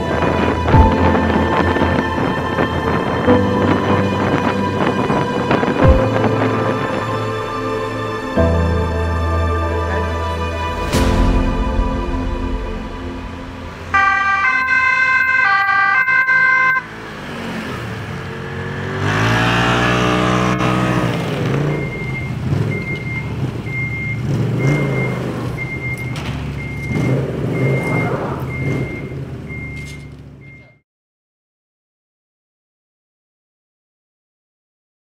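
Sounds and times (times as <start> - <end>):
two-tone siren: 13.9 - 17.0, 19.1 - 30.8
snowmobile engine revving: 13.9 - 26.0, 26.6 - 29.4
short high beeps: 21.8 - 30.8.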